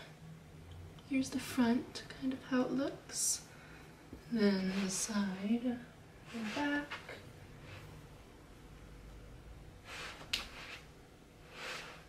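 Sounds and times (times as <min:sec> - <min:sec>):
soft rustling: 0:04.2 - 0:08.1, 0:09.8 - 0:12.0.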